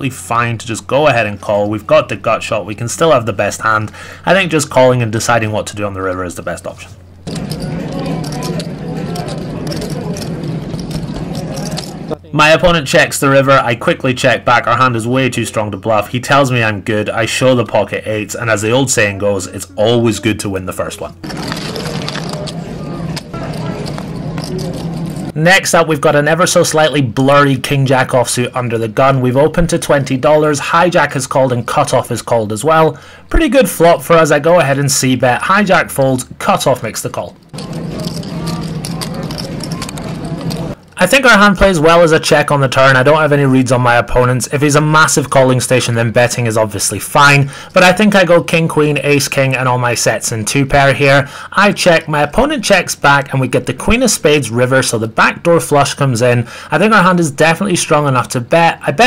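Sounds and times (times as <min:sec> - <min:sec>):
steady low hum: 0:00.0 - 0:13.2, 0:14.0 - 0:26.0, 0:37.4 - 0:41.0
low hum: 0:06.4 - 0:12.4, 0:21.1 - 0:25.4, 0:37.4 - 0:41.0
casino chips clicking: 0:07.3 - 0:12.2, 0:23.2 - 0:25.3, 0:37.5 - 0:40.8
murmur of voices: 0:07.3 - 0:12.4, 0:19.4 - 0:25.3, 0:37.6 - 0:40.8.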